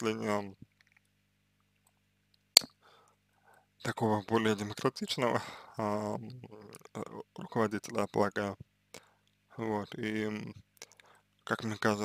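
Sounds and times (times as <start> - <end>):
man speaking: 0.0 - 0.6, 3.8 - 8.6, 9.6 - 12.0
faint soft noise: 0.0 - 12.0.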